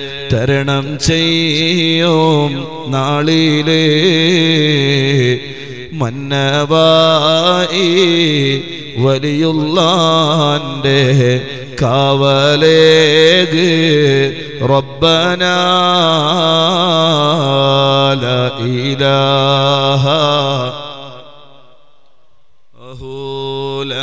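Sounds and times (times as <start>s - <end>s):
man chanting over loudspeaker: 0.0s - 21.8s, 22.8s - 24.0s.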